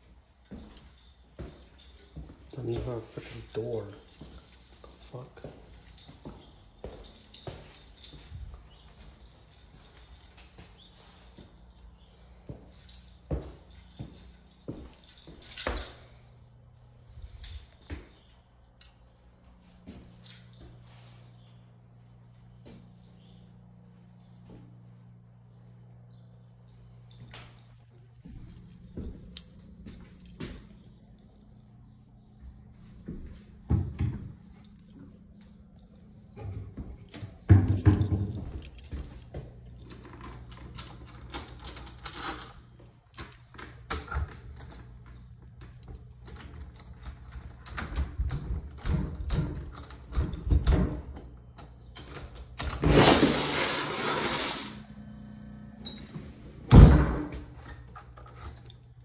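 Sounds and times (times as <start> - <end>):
steady low hum: 0.0 - 59.0
loud rushing scrape: 52.9 - 54.9.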